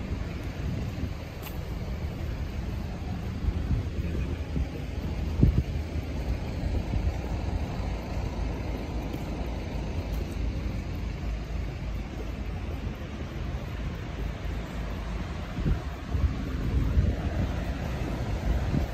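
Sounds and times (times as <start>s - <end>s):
road traffic rumble: 0.0s - 18.9s.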